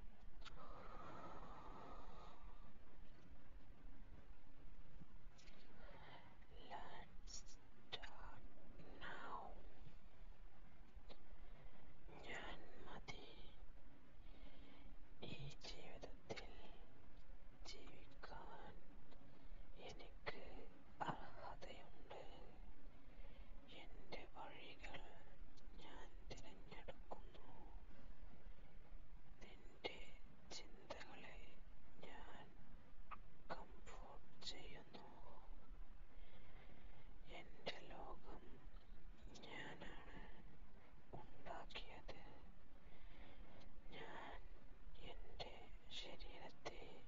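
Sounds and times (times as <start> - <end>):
person whispering: 5.4 - 9.8, 12.1 - 13.6, 15.2 - 16.9, 17.6 - 18.8, 19.8 - 22.6, 23.7 - 27.9, 29.4 - 36.4, 37.2 - 40.5, 41.1 - 42.5, 43.5 - 47.0.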